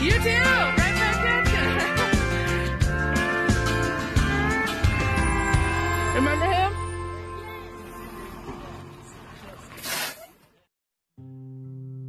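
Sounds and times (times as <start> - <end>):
bus engine driving off: 0.0 - 10.4
short loud rush of noise: 9.8 - 10.3.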